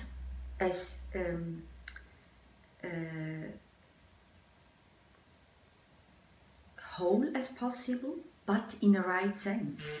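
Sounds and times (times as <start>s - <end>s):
woman speaking: 0.0s - 1.9s, 2.8s - 3.7s, 6.8s - 10.0s
faint low hum: 0.0s - 10.0s.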